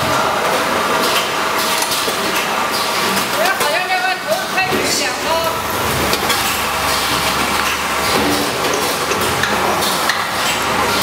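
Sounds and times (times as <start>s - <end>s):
packaging machine running: 0.0s - 11.0s.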